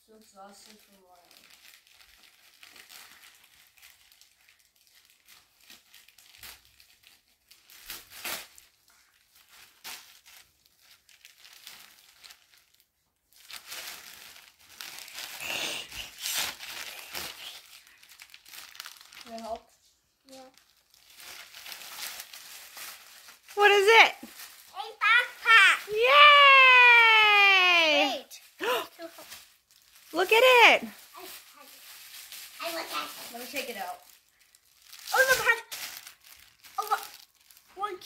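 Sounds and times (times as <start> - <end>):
plastic bag tearing: 0.4 - 19.6, 20.3 - 38.0
plastic mailer bag crinkling: 0.4 - 19.6, 20.3 - 27.8, 28.4 - 38.0.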